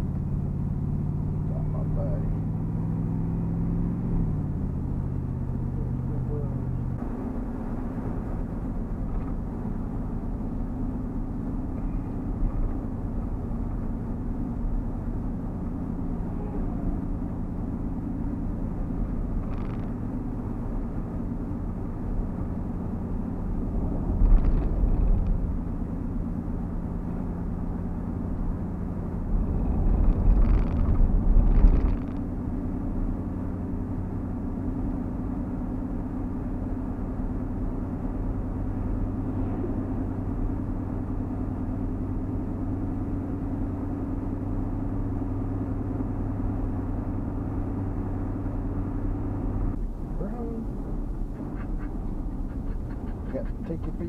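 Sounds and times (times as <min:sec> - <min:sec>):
truck engine and road noise: 0:00.0 - 0:54.0.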